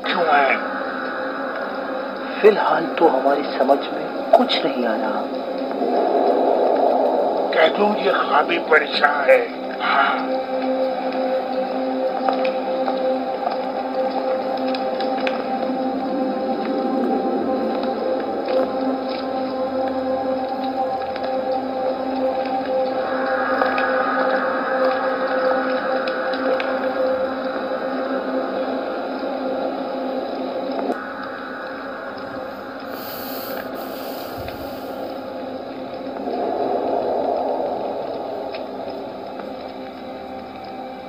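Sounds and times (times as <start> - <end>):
brief hiss: 32.9 - 35.2.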